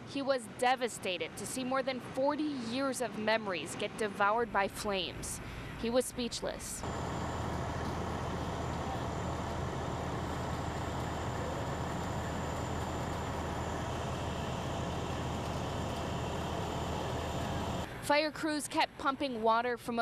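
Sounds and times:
fire truck engine running: 6.8s - 17.9s.

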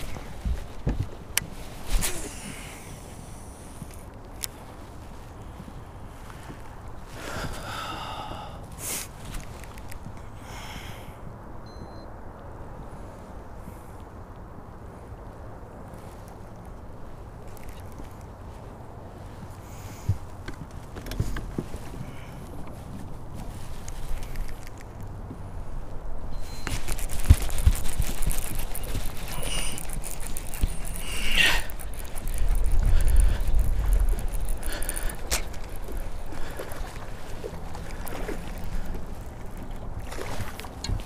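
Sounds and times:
clothing and gear rustling: 0.0s - 7.9s, 8.7s - 10.3s, 15.9s - 41.0s
wind buffeting microphone: 0.0s - 11.6s, 12.6s - 41.0s
water sloshing against boat: 17.1s - 41.0s.

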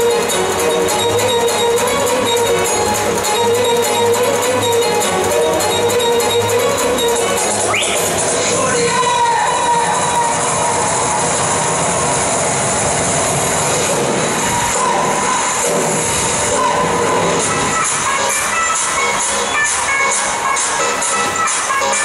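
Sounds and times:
dance music over loudspeakers: 0.0s - 22.0s.

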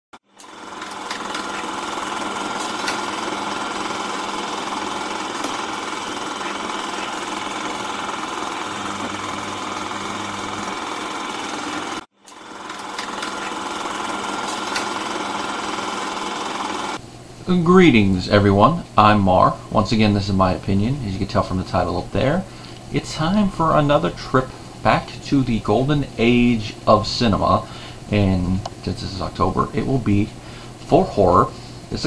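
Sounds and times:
film projector clattering: 0.3s - 17.0s
faint hum: 16.9s - 32.0s.

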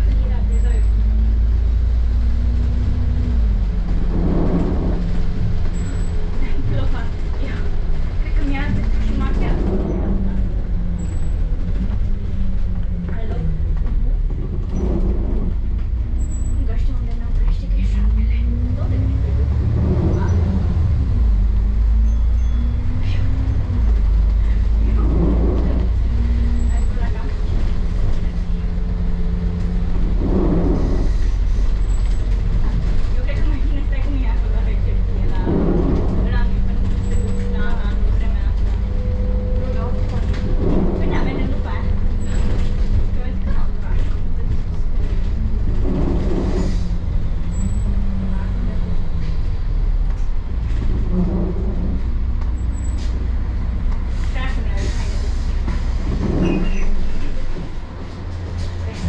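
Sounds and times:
bus engine and road rumble: 0.0s - 59.0s.

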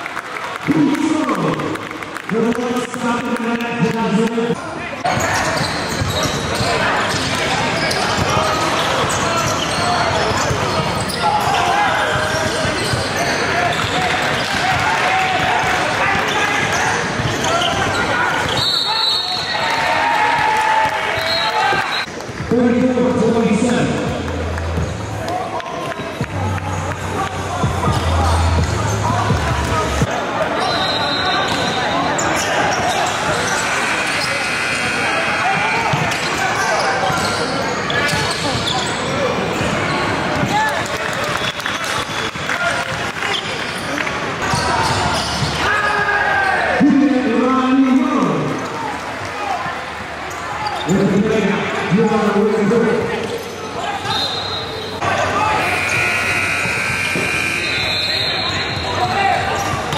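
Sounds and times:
indistinct shouting voices: 55.0s - 59.9s.

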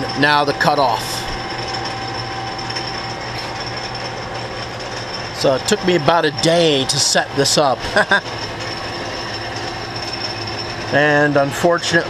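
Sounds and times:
lathe mechanical hum: 0.0s - 12.0s
thin high whine: 0.0s - 12.0s.

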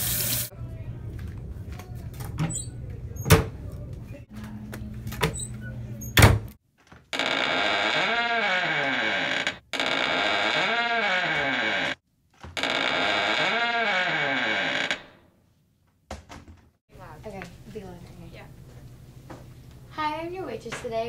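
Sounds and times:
loud buzzing alarm tone: 7.2s - 12.0s, 12.6s - 15.1s.

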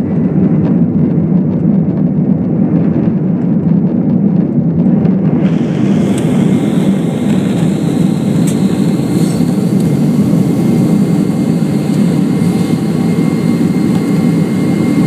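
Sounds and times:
jet engine noise: 0.0s - 15.0s
runway rumble: 0.0s - 15.0s
faint high whine: 5.3s - 15.0s.

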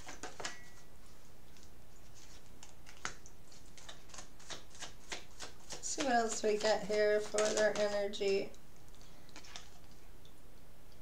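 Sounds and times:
cards being shuffled: 0.0s - 0.8s, 1.5s - 8.4s.

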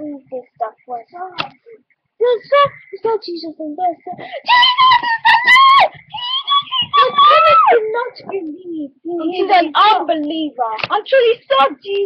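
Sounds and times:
girl screaming: 4.4s - 7.9s.

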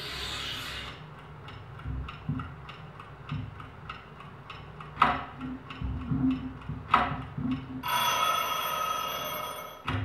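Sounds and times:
sharp ticks and clicks: 1.1s - 7.8s
bright ringing tone: 7.8s - 10.0s.

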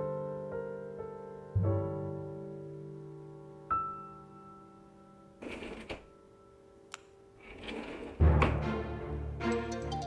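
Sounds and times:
soft background music: 0.0s - 10.0s
drawer sliding shut: 5.4s - 6.1s, 7.4s - 8.6s.

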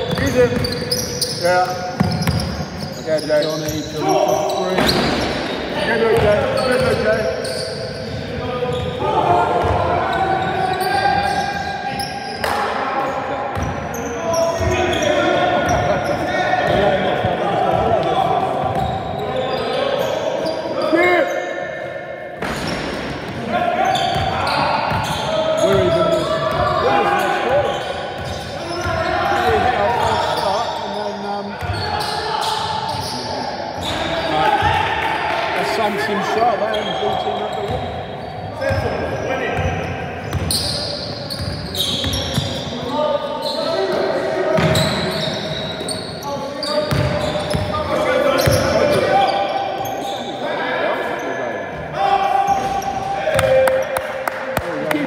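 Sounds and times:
sneakers squeaking: 0.0s - 34.9s, 35.6s - 54.0s
ball bouncing on wooden court: 2.0s - 2.6s, 46.9s - 47.7s.

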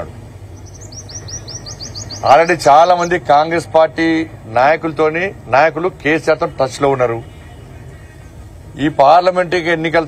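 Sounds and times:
small bird chirping: 0.6s - 3.2s.

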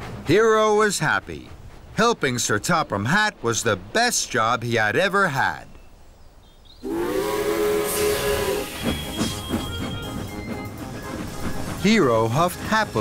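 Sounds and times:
steam engine hiss and chuffs: 0.0s - 4.7s, 6.8s - 13.0s
steam locomotive whistle: 6.8s - 11.2s
background music: 7.6s - 13.0s.

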